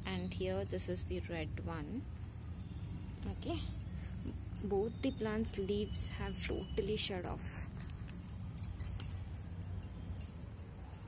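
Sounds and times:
low steady rumble: 0:00.0 - 0:11.0
light metallic jingling: 0:03.1 - 0:11.0.

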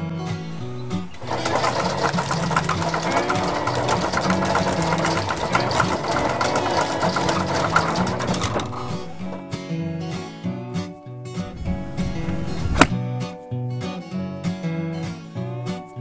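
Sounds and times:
guitar music: 0:00.0 - 0:16.0
balls clattering into plastic basket: 0:00.5 - 0:09.4
golf ball dispenser running: 0:00.5 - 0:09.4.

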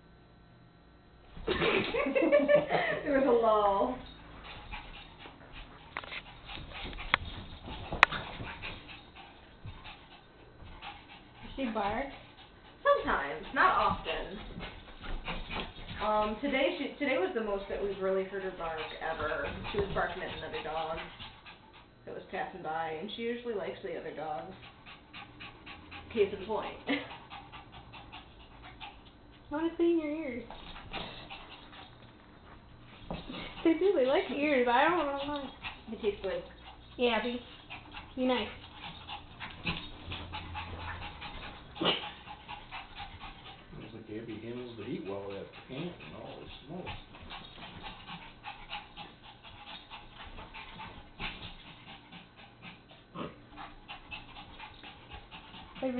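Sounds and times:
small dogs play-fighting: 0:01.3 - 0:55.9
dogs scuffling on carpet: 0:04.4 - 0:21.3.

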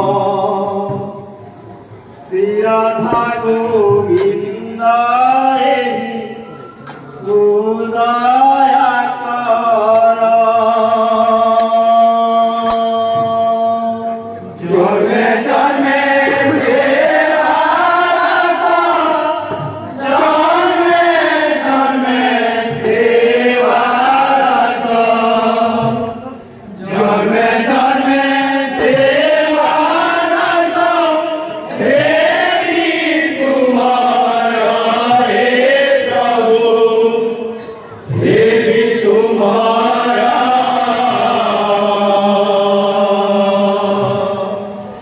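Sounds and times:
men singing in unison: 0:00.0 - 0:01.3, 0:02.3 - 0:06.6, 0:07.2 - 0:45.0
men chanting together: 0:14.6 - 0:45.0.

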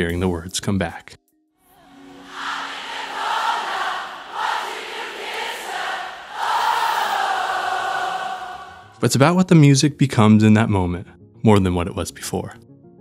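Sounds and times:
concert crowd singing: 0:02.0 - 0:09.0.

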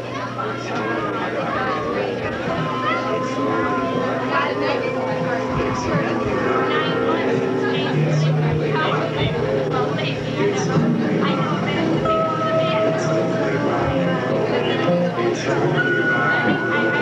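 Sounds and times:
chatter of voices: 0:00.0 - 0:17.0
steady low hum: 0:01.3 - 0:17.0.

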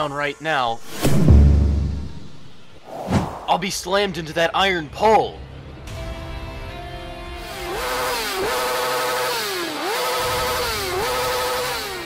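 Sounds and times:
background music: 0:00.0 - 0:09.2
motorcycle engine revving: 0:07.4 - 0:12.0.

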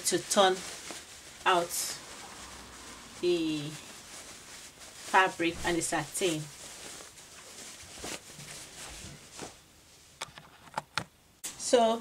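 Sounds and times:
fabric rustling: 0:00.0 - 0:10.9.

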